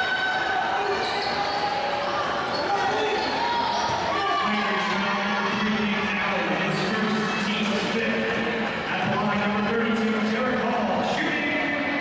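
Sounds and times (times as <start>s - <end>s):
crowd voices: 0.0s - 12.0s
players talking: 0.4s - 12.0s.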